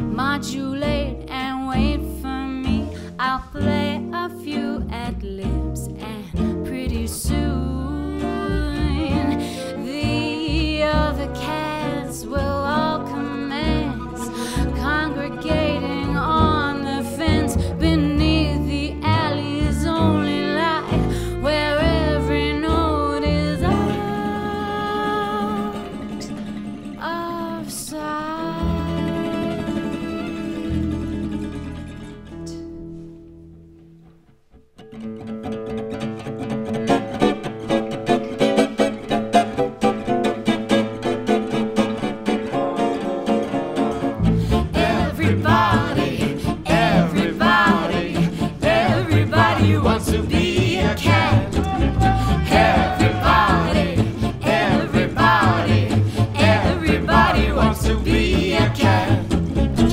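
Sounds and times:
woman singing: 0.0 - 26.4, 27.0 - 31.7, 44.5 - 59.3
plucked acoustic guitars: 0.0 - 59.9
jazz band playing: 5.6 - 26.4, 36.8 - 59.9.

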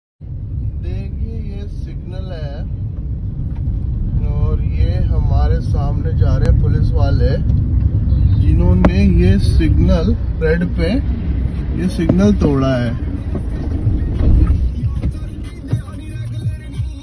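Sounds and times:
car driving rumble: 0.2 - 17.0.

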